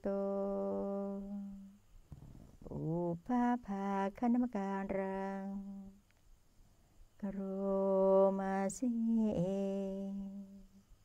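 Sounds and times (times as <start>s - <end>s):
person chanting: 2.7s - 5.9s, 7.2s - 10.6s.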